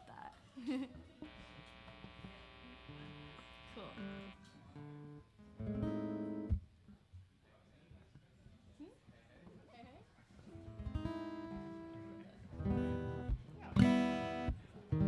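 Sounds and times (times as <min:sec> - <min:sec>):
acoustic guitar strumming: 0:01.3 - 0:06.6, 0:10.7 - 0:15.0.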